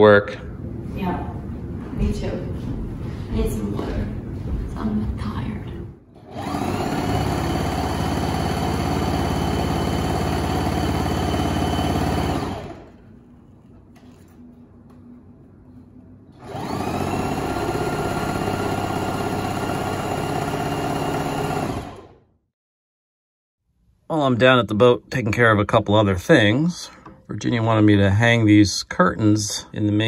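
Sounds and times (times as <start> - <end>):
sewing machine stitching: 6.2 - 13.1, 16.4 - 22.2.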